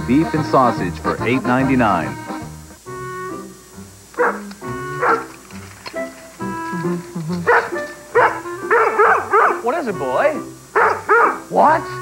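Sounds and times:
background music: 0.0 - 12.0
dog barking: 4.2 - 5.3, 7.4 - 9.8, 10.7 - 11.5.

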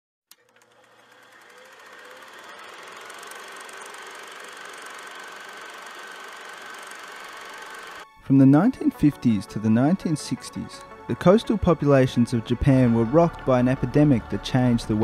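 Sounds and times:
machine hum with high tone: 0.3 - 8.1.

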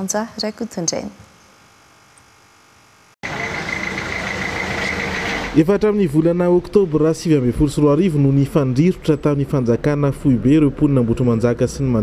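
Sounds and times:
minibus engine running: 3.2 - 12.0
traffic noise: 3.2 - 12.0.

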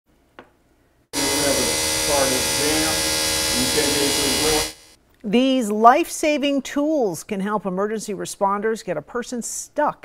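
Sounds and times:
hydraulic tool motor buzzing: 1.2 - 5.0.

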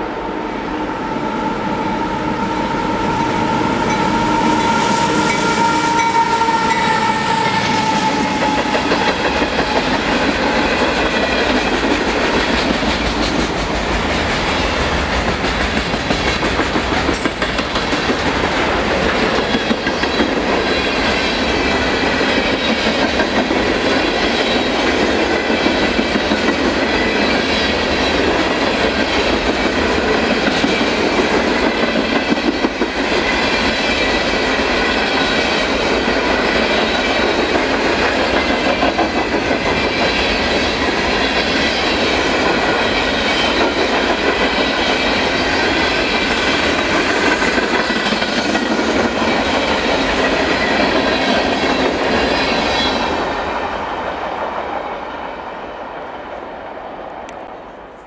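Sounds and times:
freight train rolling past: 0.0 - 58.0
steel wheels on rails: 1.0 - 54.6.

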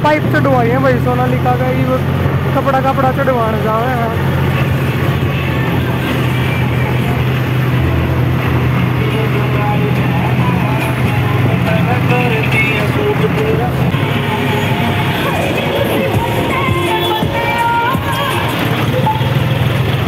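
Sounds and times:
tractor diesel engines running: 0.0 - 20.0
music with singing voice: 4.1 - 20.0.

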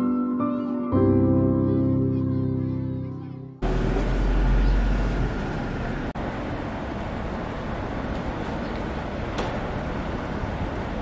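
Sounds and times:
heavy low rumble: 3.6 - 8.4
street traffic noise: 3.6 - 11.0.

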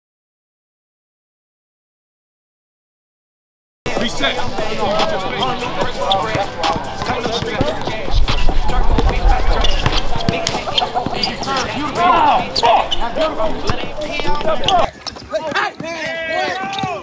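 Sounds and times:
players calling out: 3.9 - 17.0
basketball bouncing on asphalt: 5.8 - 11.7.

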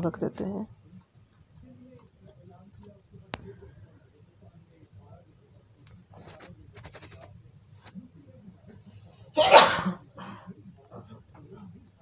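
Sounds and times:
person sneezing: 9.4 - 10.0.

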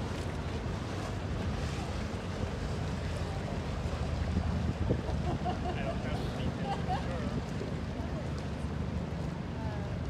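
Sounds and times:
motorboat engines rumbling: 0.0 - 10.0
water lapping against quay: 0.0 - 10.0.

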